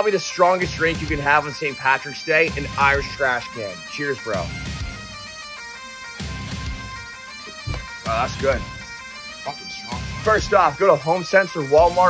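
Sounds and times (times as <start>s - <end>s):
bagpipe music with drone: 0.0s - 12.0s.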